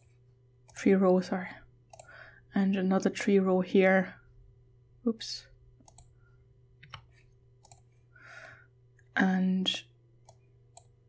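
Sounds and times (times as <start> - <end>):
faint steady hum: 0.0 - 11.0
computer mouse click: 1.9 - 2.1, 5.8 - 6.2, 6.8 - 7.9, 10.2 - 11.0
soft breath: 8.0 - 8.8.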